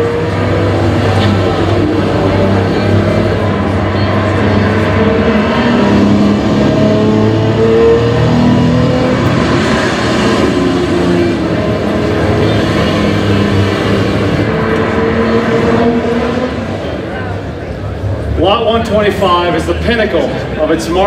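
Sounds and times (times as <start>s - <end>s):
car engine revving: 0.0s - 20.8s.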